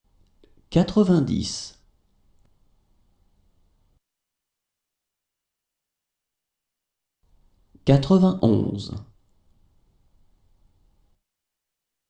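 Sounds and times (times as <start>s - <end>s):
man speaking a word: 7.9s - 9.1s.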